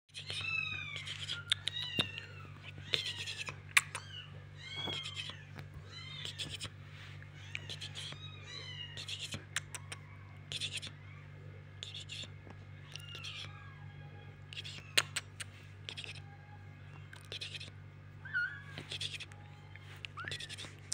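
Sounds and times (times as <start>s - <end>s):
kittens mewing: 0.1s - 20.9s.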